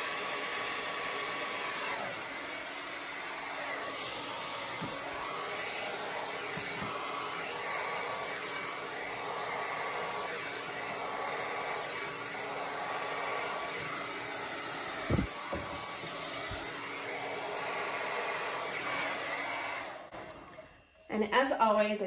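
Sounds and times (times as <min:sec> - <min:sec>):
hair dryer running: 0:00.0 - 0:21.8.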